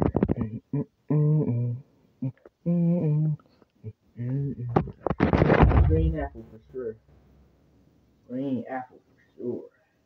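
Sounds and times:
person humming: 0.3s - 3.4s, 4.2s - 4.9s.

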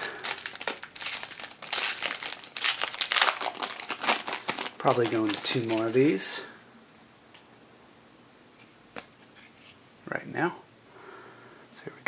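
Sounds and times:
foil wrapper crinkling: 0.0s - 6.4s.

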